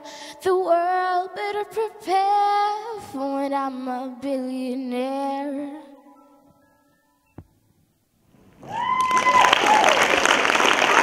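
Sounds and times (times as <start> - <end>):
girl singing: 0.0 - 6.5.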